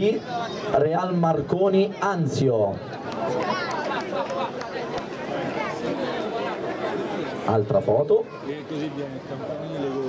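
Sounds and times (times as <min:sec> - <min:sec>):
children chattering: 0:03.0 - 0:07.5, 0:08.2 - 0:10.0.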